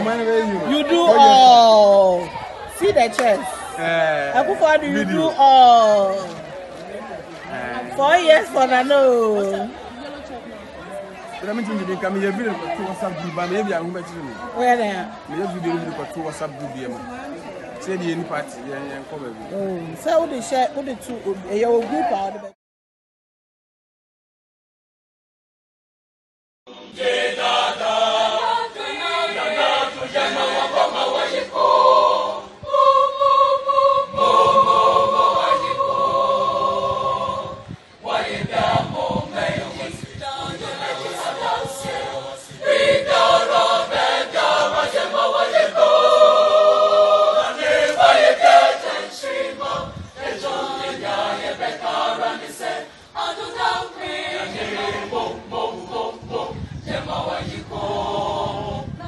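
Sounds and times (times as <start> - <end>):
choir singing: 26.7 - 59.0.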